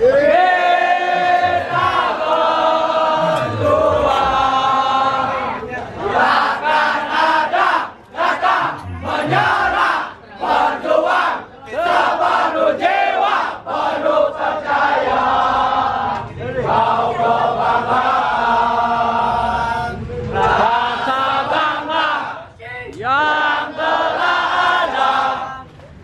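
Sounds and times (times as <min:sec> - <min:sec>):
crowd chanting: 0:00.0 - 0:25.7
crowd singing in unison: 0:00.0 - 0:25.7.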